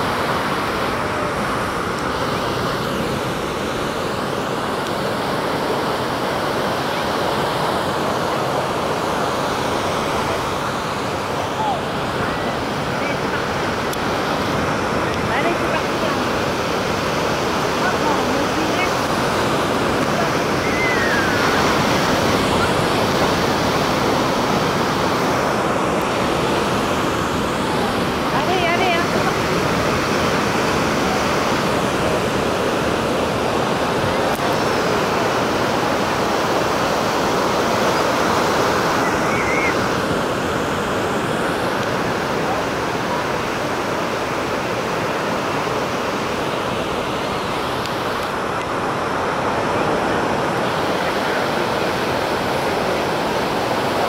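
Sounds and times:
ocean waves breaking: 0.0 - 54.0.

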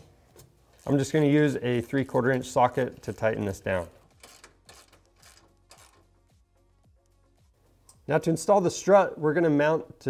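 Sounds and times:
ratchet wrench ratcheting: 0.7 - 6.2.

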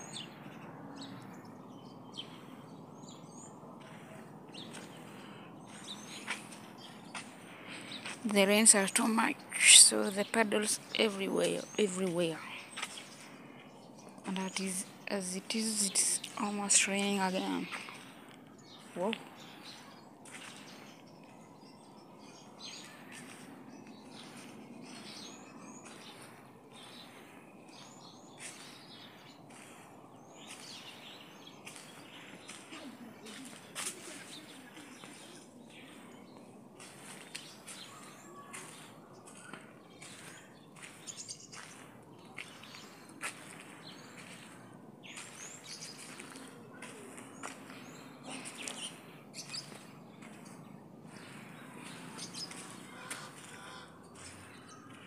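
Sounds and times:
birds chirping and calling: 0.0 - 55.0
outdoor background noise: 0.0 - 55.0
footsteps on wet dirt road: 2.2 - 55.0.

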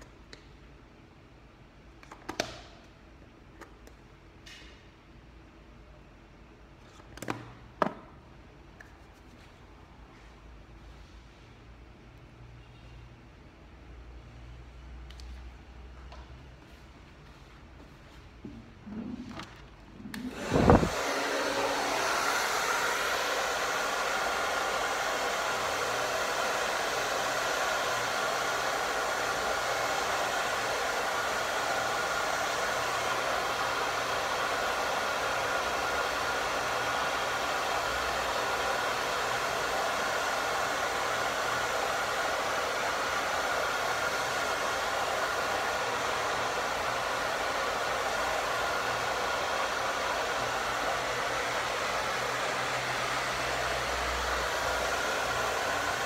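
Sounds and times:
hair dryer blowing: 18.9 - 56.0.

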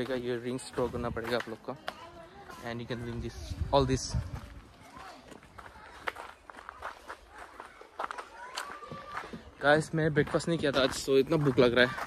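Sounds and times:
faint voices: 0.0 - 12.0
footsteps on dirt path: 0.0 - 12.0.

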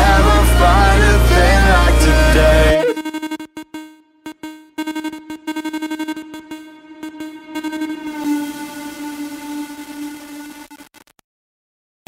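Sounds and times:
sustained synthesizer note: 0.0 - 10.9.

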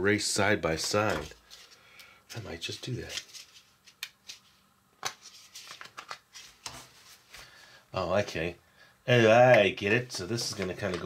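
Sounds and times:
paper rustling: 2.4 - 7.6.

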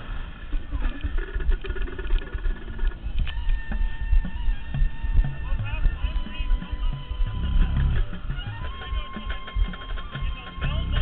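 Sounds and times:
faint steady tones: 0.0 - 11.0
wind buffeting microphone: 0.0 - 11.0.

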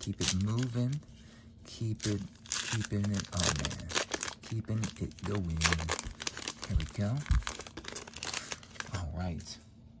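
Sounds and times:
foil wrapper crinkling and tearing: 0.0 - 1.0, 1.8 - 9.2.

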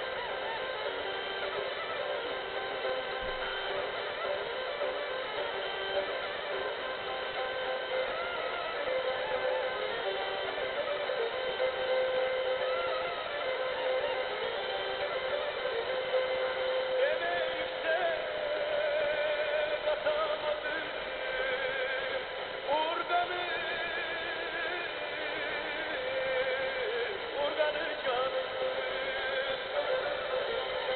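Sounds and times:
folk music through small radio: 0.0 - 30.9.

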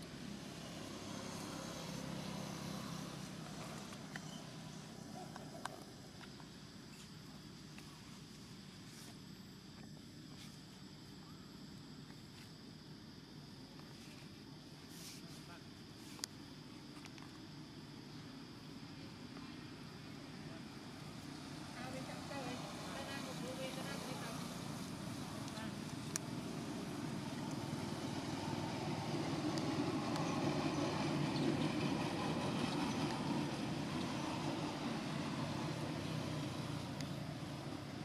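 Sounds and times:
passing motor vehicle engine: 0.0 - 5.6, 21.4 - 38.0.

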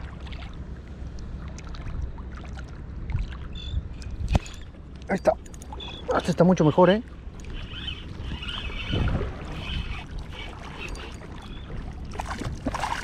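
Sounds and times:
wind noise on microphone: 3.0 - 4.7, 7.5 - 13.0
fishing reel whirring: 7.4 - 11.6
fish splashing: 7.4 - 13.0.

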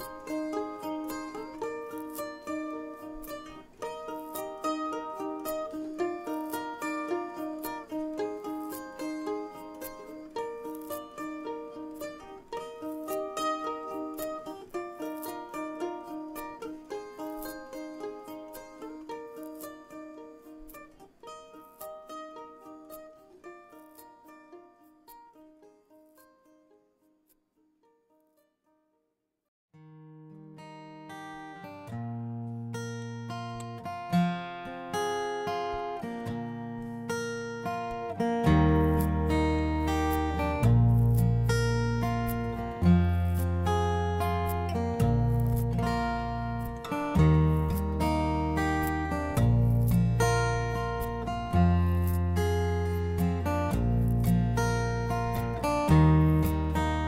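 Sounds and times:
guitar piece with deep bass: 0.0 - 24.7, 29.8 - 57.0
plucked-string tune: 0.0 - 28.8, 29.8 - 57.0.

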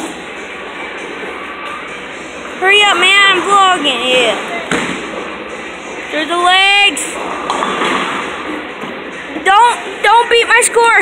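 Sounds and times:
bowling alley hall noise: 0.0 - 11.0
bowling ball rolling on wooden lane: 7.2 - 9.5.

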